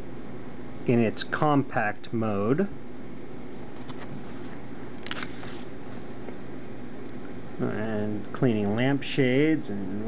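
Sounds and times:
low background hum: 0:00.0 - 0:10.0
paper pages rustling: 0:03.5 - 0:06.2.

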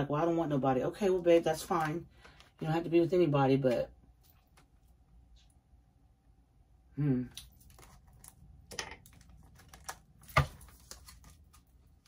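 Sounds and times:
cards rustling: 0:07.5 - 0:12.0.

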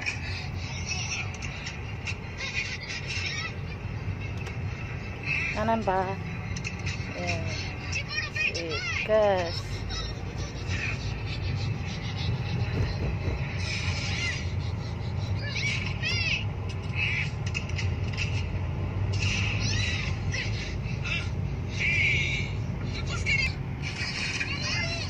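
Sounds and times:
car engine and road rumble: 0:00.0 - 0:25.0.

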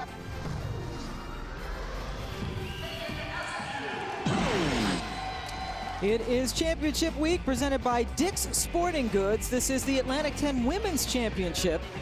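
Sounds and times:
sports broadcast intro music: 0:00.0 - 0:12.0.

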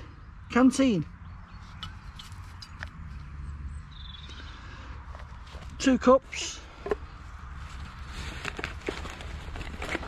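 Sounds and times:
bird chirp: 0:00.0 - 0:05.0.

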